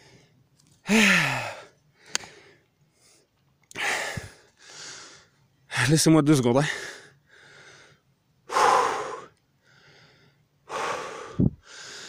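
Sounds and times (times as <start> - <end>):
man breathing hard: 0.0 - 5.4, 6.7 - 12.0
man sighing: 0.8 - 1.7.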